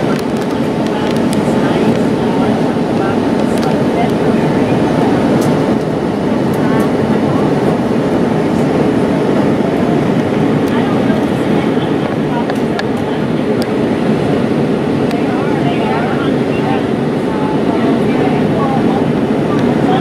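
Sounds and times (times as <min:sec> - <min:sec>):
airliner cabin engine hum: 0:00.0 - 0:20.0.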